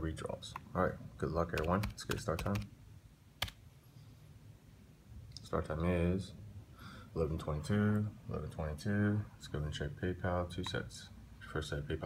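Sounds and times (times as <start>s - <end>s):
laptop keystroke: 1.6s - 2.7s, 3.4s - 3.6s.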